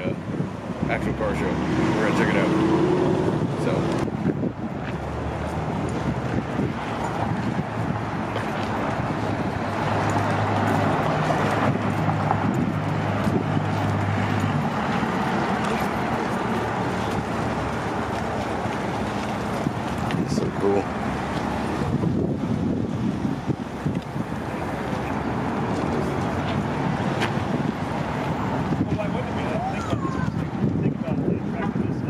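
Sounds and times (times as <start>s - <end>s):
traffic noise: 0.0s - 32.0s.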